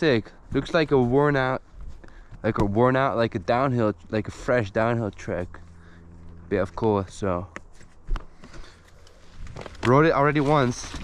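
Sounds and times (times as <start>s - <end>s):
man talking: 0.0s - 1.6s, 2.4s - 5.6s, 6.5s - 7.6s, 9.8s - 11.0s
bike rolling on gravel: 8.5s - 11.0s.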